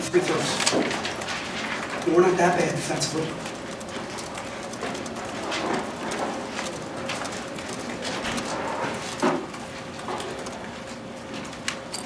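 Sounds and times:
room noise: 0:00.0 - 0:12.0
clicks and taps: 0:00.6 - 0:10.7.

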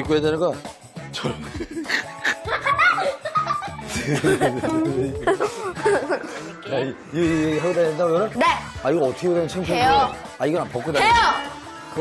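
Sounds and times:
background music with held notes: 0:00.0 - 0:12.0
people laughing: 0:01.5 - 0:07.9.

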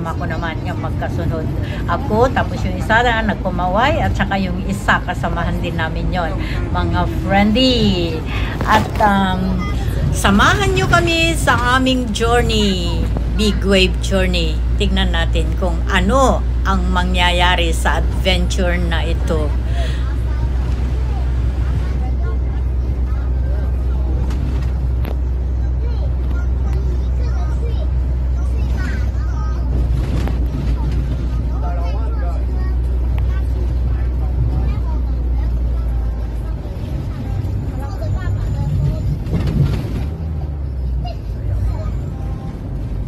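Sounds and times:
vehicle engine and road noise: 0:00.0 - 0:43.0.

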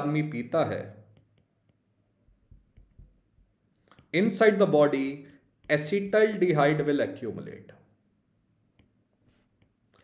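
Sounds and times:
stylus tapping on tablet screen: 0:01.0 - 0:04.1.

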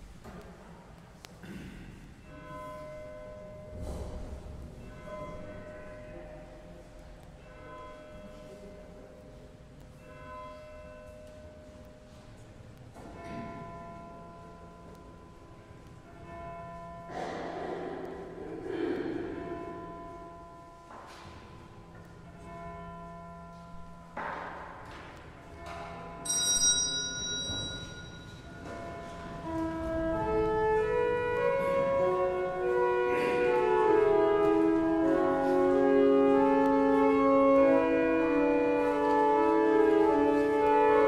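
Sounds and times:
pipe organ chords: 0:28.4 - 0:41.0.

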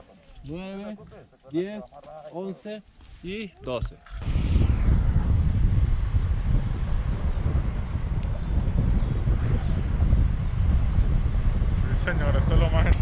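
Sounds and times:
wind rushing over microphone: 0:03.3 - 0:13.0.

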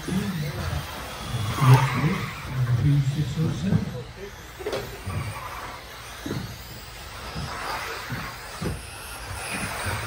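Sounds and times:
people talking: 0:00.0 - 0:05.5
rc cars motors running: 0:00.0 - 0:10.0.

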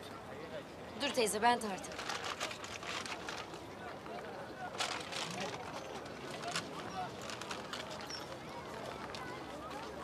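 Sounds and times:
faint market chatter: 0:00.0 - 0:10.0.

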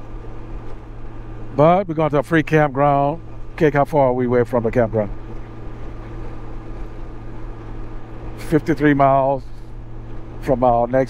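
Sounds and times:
motorcycle engine drone: 0:00.0 - 0:11.0.

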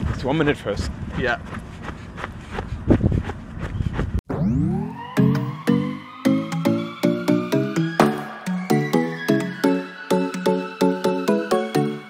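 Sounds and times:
wind on microphone: 0:00.0 - 0:04.2
music with rising tones: 0:04.3 - 0:12.0.

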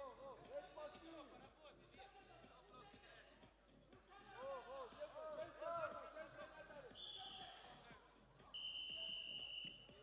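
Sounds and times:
faint referee whistle blasts: 0:08.6 - 0:10.0.

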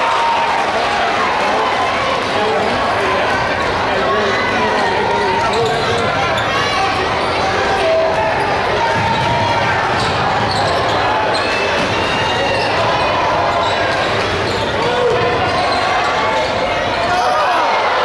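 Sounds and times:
crowd voices: 0:00.0 - 0:18.0
basketball bouncing on wooden court: 0:08.9 - 0:10.9.

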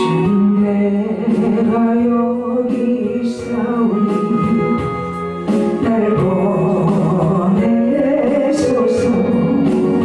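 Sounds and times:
person singing melody: 0:00.0 - 0:10.0
organ-like keyboard held notes: 0:02.1 - 0:10.0.

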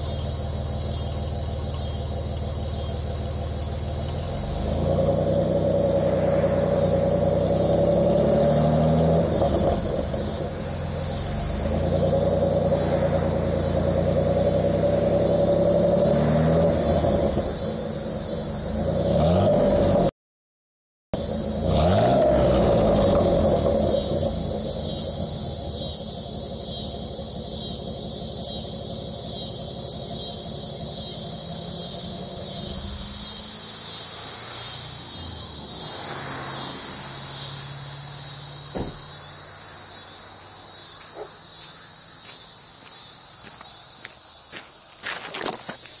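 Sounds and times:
truck engine idling: 0:00.0 - 0:16.5, 0:17.4 - 0:18.8, 0:22.5 - 0:46.0
insects chirping: 0:00.0 - 0:20.1, 0:21.2 - 0:46.0.

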